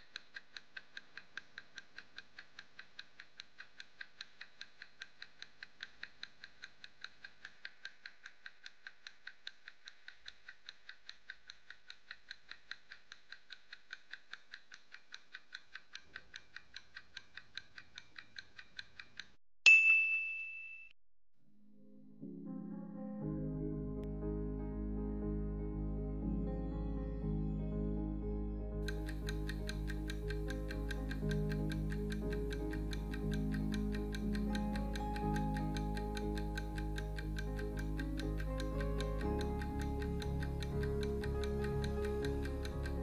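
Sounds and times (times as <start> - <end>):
clock-like timer ticking: 0.0 - 19.4, 28.8 - 43.0
bright ding: 19.7 - 21.0.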